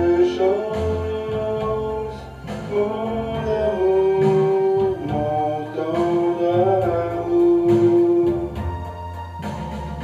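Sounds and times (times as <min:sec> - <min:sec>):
man singing into microphone: 0:00.0 - 0:08.7
karaoke backing track: 0:00.0 - 0:10.0.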